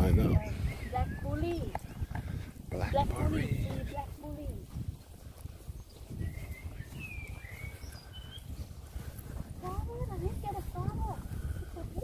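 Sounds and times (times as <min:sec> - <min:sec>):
bird whistled chirps: 0:06.2 - 0:08.5.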